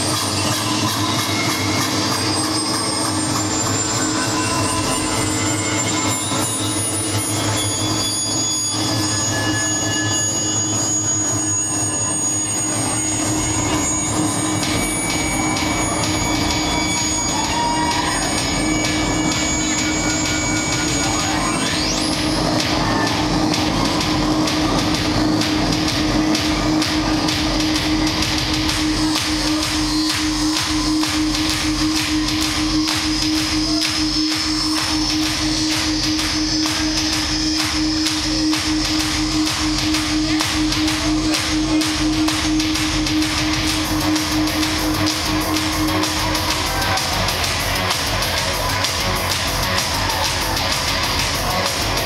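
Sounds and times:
kick drum beat: 14.6s - 52.0s.

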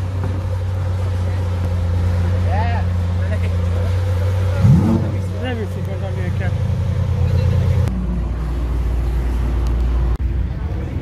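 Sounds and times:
car engine low hum: 0.0s - 11.0s
sports car engine idling: 0.0s - 11.0s.

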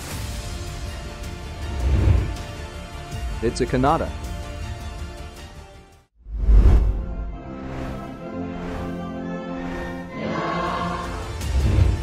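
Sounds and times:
dramatic soundtrack music: 0.0s - 12.0s
choir singing sustained chords: 7.4s - 12.0s.

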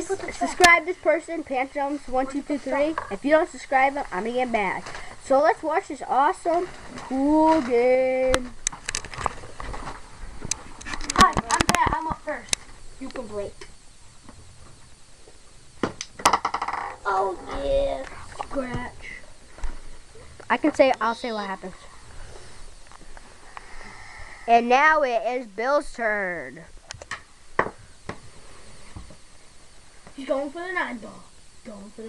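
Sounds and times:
faint room noise: 0.0s - 32.0s
pool balls clattering: 16.2s - 17.0s.

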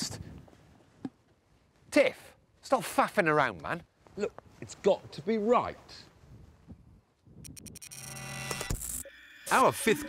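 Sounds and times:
quick sharp clicks: 7.4s - 9.0s.

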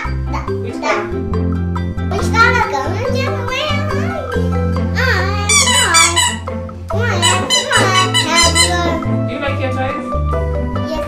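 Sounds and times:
background music with bass line: 0.0s - 11.0s
squeaky rubber toys: 5.4s - 9.1s.

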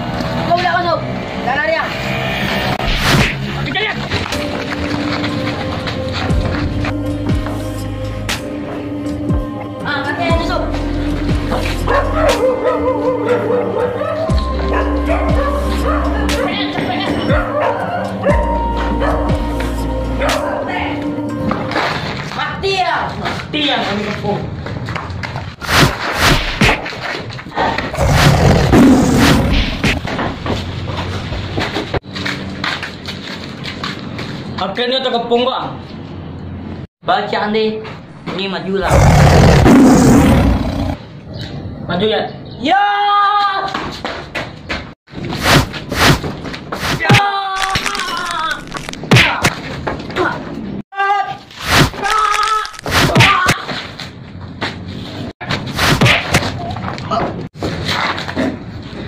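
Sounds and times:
loud roar: 27.8s - 30.0s, 38.8s - 41.1s.

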